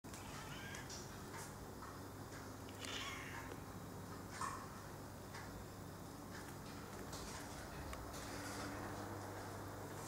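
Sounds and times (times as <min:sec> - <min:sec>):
cat meowing: 0:00.1 - 0:00.9, 0:02.8 - 0:03.5.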